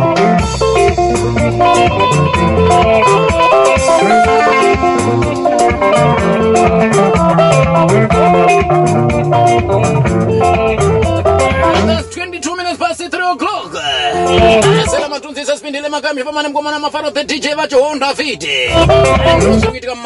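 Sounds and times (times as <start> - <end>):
percussion beat: 0.0 - 12.5, 14.1 - 15.1, 18.7 - 19.8
plucked guitar: 0.0 - 12.7, 13.9 - 15.1, 18.6 - 19.8
bass: 0.0 - 15.2, 18.0 - 20.0.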